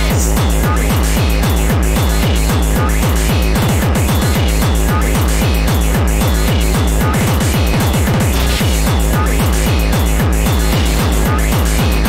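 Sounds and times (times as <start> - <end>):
distorted kick drum: 0.0 - 12.0
harsh noisy synth layer: 0.0 - 12.0.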